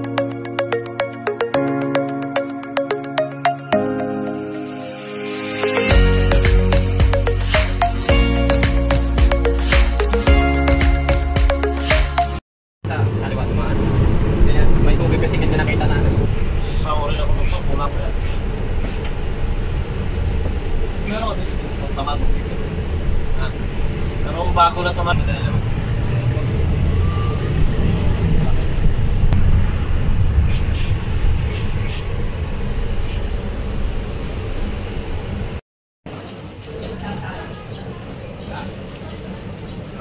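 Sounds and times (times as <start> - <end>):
bus engine and road rumble: 11.8 - 40.0.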